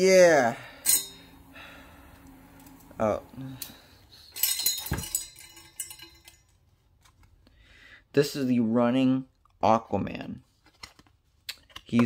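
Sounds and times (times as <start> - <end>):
trading cards rustling: 10.4 - 12.0.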